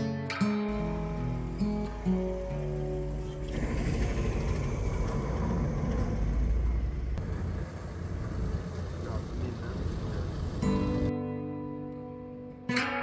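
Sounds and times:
guitar music: 0:00.0 - 0:05.0, 0:10.4 - 0:13.0
ferry engine low rumble: 0:00.7 - 0:11.1.

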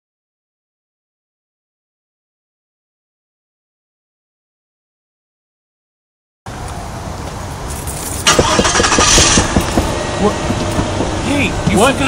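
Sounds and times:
car engine running inside cabin: 0:08.3 - 0:12.0.

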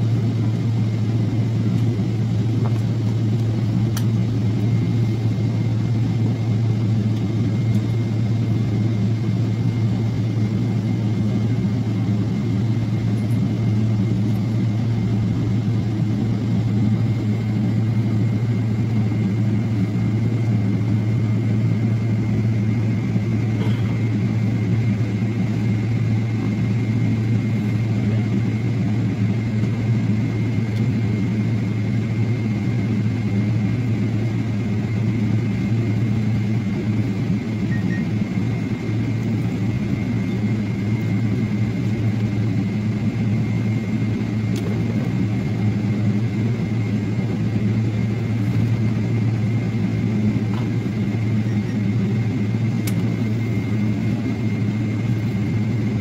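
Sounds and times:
faint high whine: 0:11.7 - 0:44.6
bus engine hum: 0:23.6 - 0:24.0.

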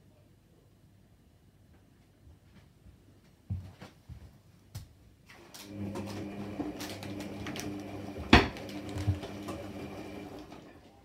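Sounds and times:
washing machine motor humming: 0:05.3 - 0:11.0
washing machine drum knock: 0:07.8 - 0:10.0.

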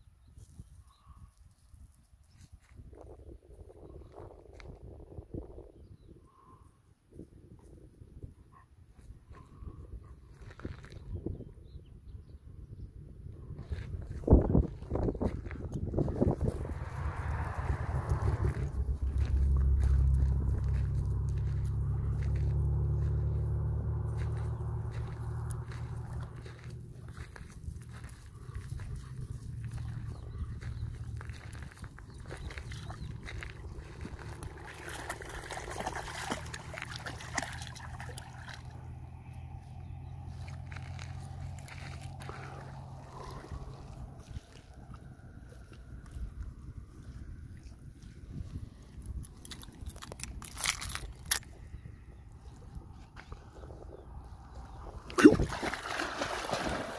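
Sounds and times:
footsteps on gravel: 0:13.8 - 0:37.8, 0:40.3 - 0:44.8
low steady drone: 0:16.1 - 0:36.4.

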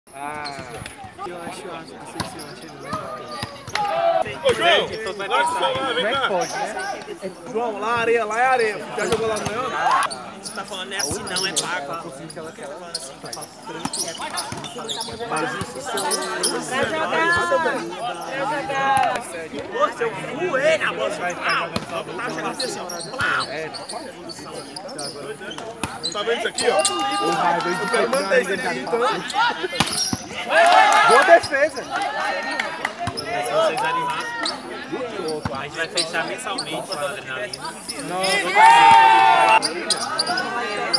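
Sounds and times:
voices of players and onlookers: 0:00.1 - 0:40.9.

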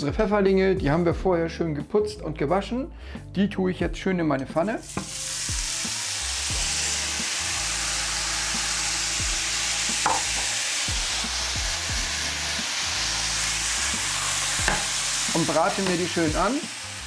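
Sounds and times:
mushrooms sizzling in oil: 0:04.8 - 0:17.0.

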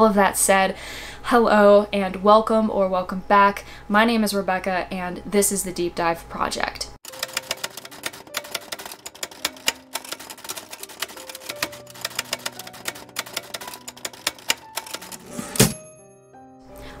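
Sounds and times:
typewriter key strikes: 0:07.1 - 0:15.8.

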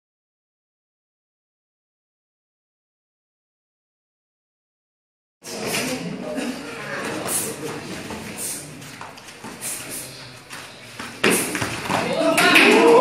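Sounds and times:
spectators' voices: 0:05.4 - 0:13.0
feet on mat: 0:06.9 - 0:13.0
people shouting and exclaiming: 0:11.9 - 0:13.0.

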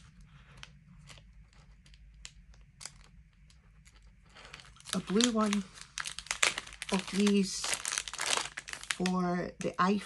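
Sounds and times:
low steady hum: 0:00.0 - 0:10.0
plastic bag crinkling: 0:00.0 - 0:10.0.

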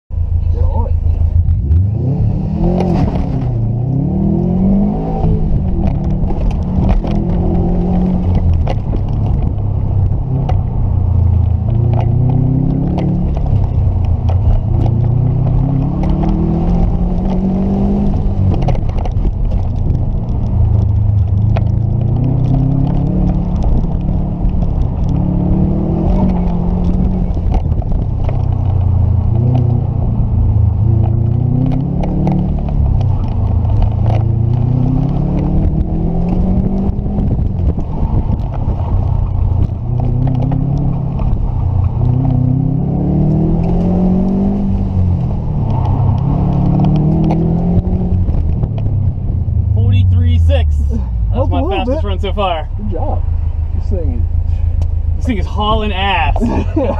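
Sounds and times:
car engine revving: 0:00.2 - 0:56.9.

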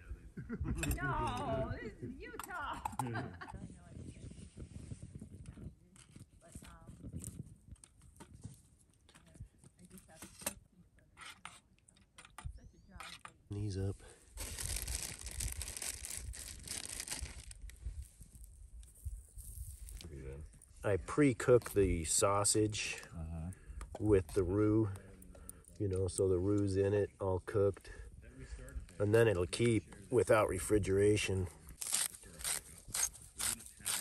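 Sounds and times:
wood fire crackling: 0:13.5 - 0:30.4.

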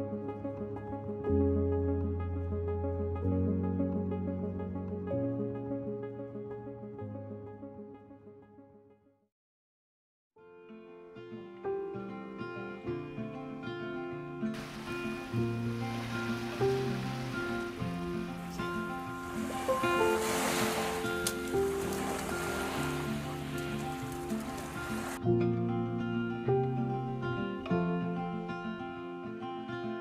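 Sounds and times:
acoustic guitar music: 0:10.6 - 0:30.0
small waves washing onto beach: 0:14.6 - 0:25.2.

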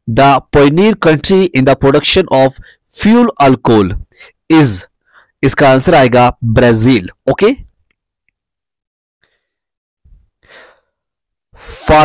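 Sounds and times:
person speaking: 0:00.0 - 0:07.8, 0:11.6 - 0:12.0
person breathing in: 0:05.0 - 0:05.4, 0:09.2 - 0:11.0.

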